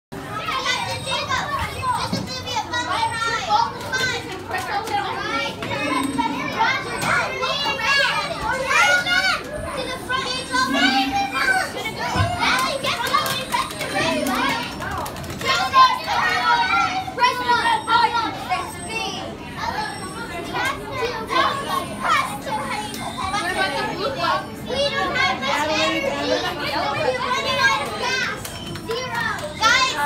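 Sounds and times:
children talking and calling out: 0.2 - 30.0
short low hum: 10.2 - 11.9.

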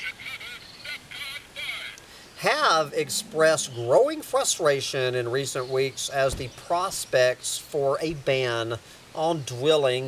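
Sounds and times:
high-pitched bird calls: 0.0 - 2.0.

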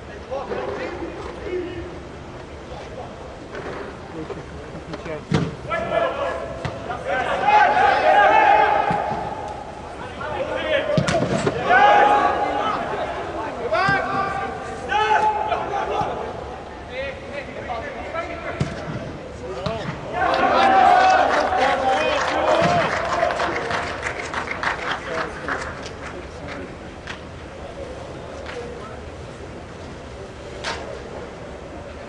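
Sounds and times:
players shouting: 5.7 - 17.3, 19.6 - 24.1.

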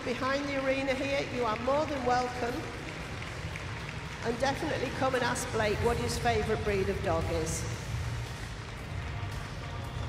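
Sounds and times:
background music with bass line: 7.0 - 10.0.

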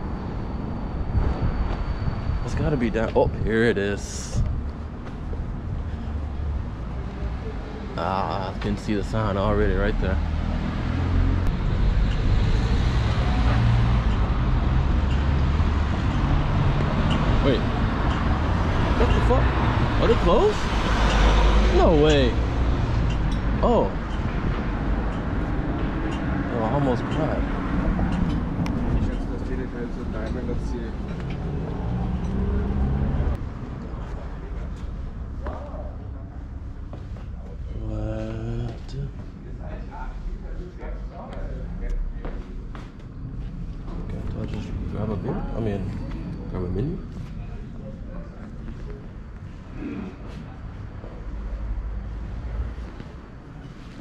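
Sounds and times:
wind on microphone: 0.0 - 3.5
traffic rumble: 0.0 - 54.0
people's voices: 33.8 - 43.0, 43.9 - 51.9.

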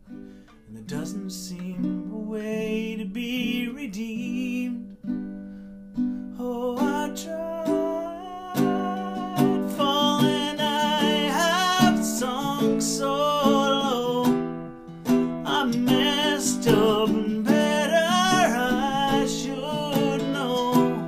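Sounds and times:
ukulele strumming chords: 0.0 - 21.0
man singing: 0.7 - 5.1, 6.3 - 21.0.

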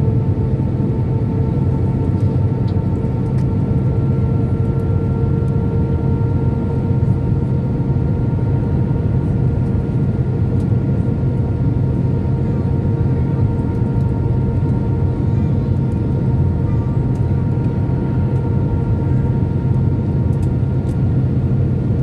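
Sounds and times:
jet engine and airflow noise: 0.0 - 22.0.

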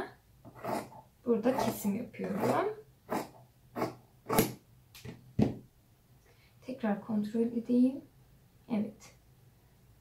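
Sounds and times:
shears snipping fabric: 1.5 - 4.6.

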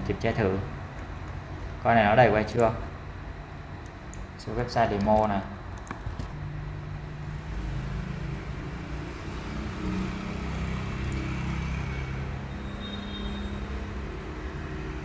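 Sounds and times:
road traffic rumble: 5.6 - 15.0.

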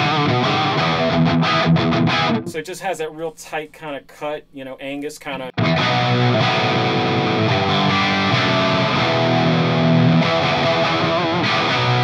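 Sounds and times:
overdriven electric guitar chords: 0.0 - 2.6, 5.6 - 12.0.

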